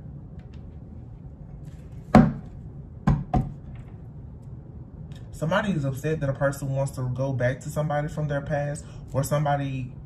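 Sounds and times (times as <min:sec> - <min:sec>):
knocks on hard surface: 0:02.1 - 0:03.6.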